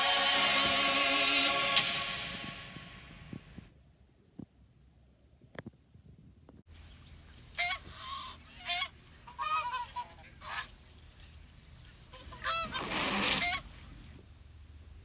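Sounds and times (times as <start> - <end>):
rustling: 10.9 - 14.3
animal calls bending in pitch: 12.2 - 13.7.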